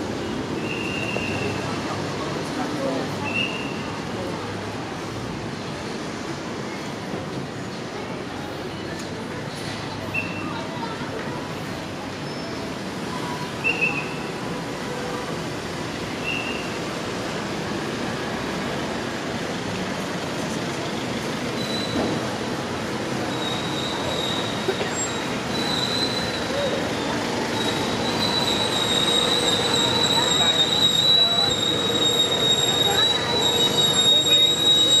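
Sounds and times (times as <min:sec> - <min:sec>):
street traffic: 0:00.0 - 0:35.0.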